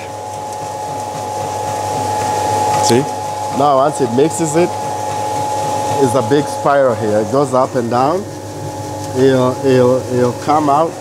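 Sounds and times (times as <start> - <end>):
constant machine whine: 0.0 - 11.0
feed mixer humming: 0.0 - 11.0.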